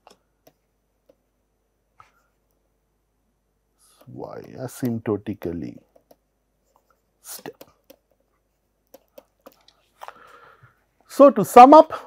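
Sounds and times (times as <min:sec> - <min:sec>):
short in-breath: 0:10.0 - 0:10.8.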